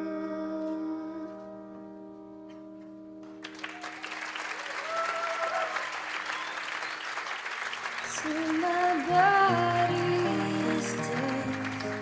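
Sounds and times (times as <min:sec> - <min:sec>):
audience applauding: 0:03.3 - 0:12.0.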